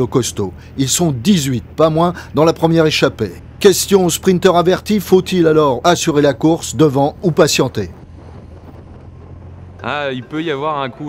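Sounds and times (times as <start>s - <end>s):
low steady rumble: 0.0s - 11.0s
wind rushing over microphone: 3.4s - 11.0s.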